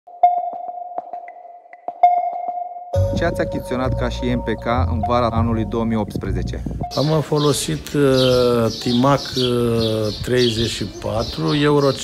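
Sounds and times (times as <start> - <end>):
steady electronic tone: 2.0 - 7.0.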